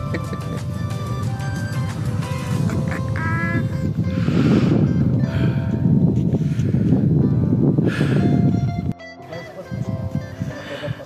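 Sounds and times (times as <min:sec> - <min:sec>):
man laughing: 0:00.0 - 0:00.9.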